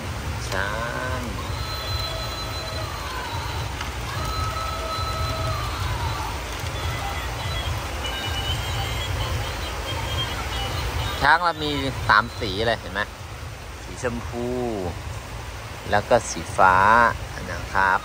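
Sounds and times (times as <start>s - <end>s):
toy playing electronic tune: 1.4s - 5.9s, 6.5s - 12.7s.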